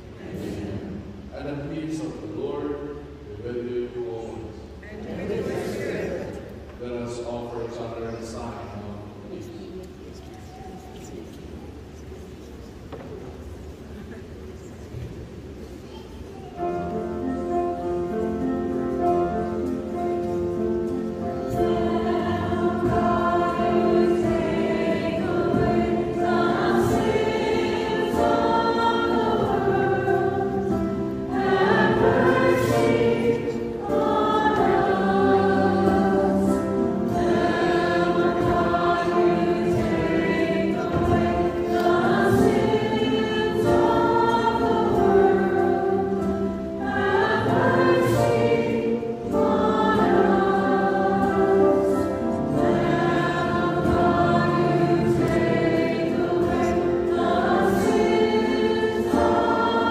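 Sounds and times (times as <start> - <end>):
choir singing a hymn: 0.0 - 9.6, 16.5 - 59.9.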